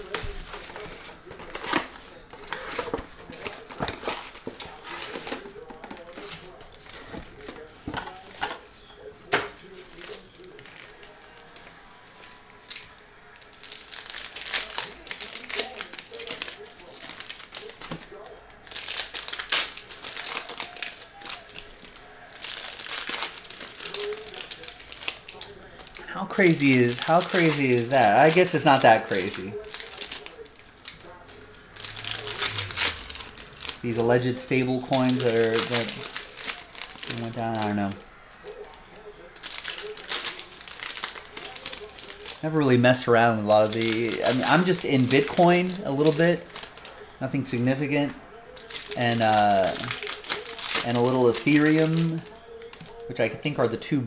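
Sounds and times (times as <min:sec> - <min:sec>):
plastic and foil wrappers crinkling: 0:00.0 - 0:54.0.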